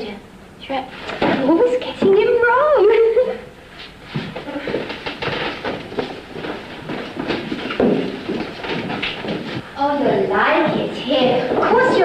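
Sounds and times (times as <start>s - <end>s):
footsteps on hard floor: 3.8s - 9.7s, 10.6s - 12.0s.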